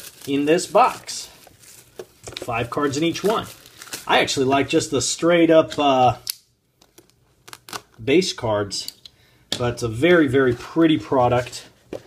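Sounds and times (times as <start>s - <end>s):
person speaking: 0.0s - 1.5s, 2.2s - 6.3s, 7.9s - 12.0s
hands handling shrink-wrapped box: 0.0s - 4.4s.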